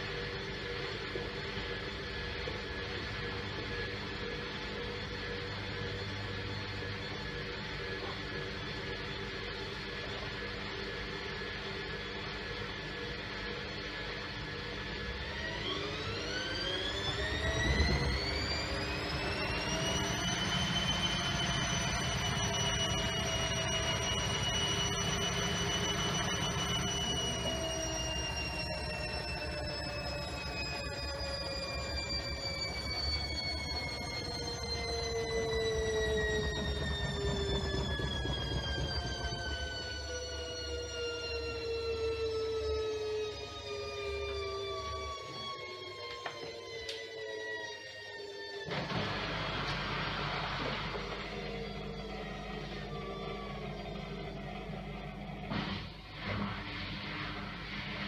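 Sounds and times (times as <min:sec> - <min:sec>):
washing machine motor whine: 0:00.0 - 0:58.0
washing machine running: 0:00.0 - 0:58.0.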